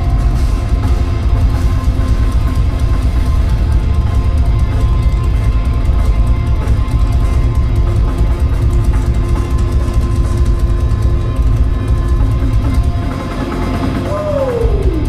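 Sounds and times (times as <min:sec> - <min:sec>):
distorted electric guitar: 0:00.0 - 0:15.0
drum kit with cymbals: 0:00.0 - 0:15.0
live heavy rock band: 0:00.0 - 0:15.0.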